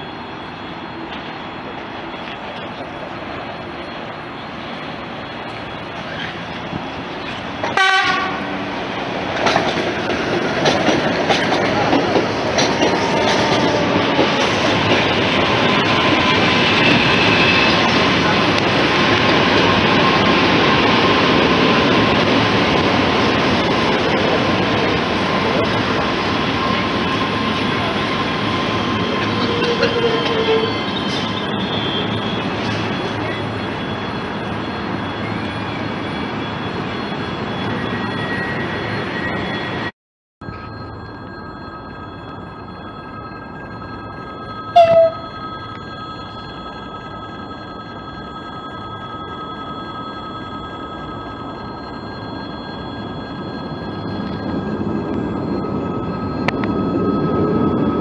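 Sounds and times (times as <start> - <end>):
train whine: 0.0 - 58.0
train horn blast: 7.7 - 8.6, 29.4 - 30.8, 44.7 - 45.2
train wheels clicking over rail joints: 9.2 - 15.6.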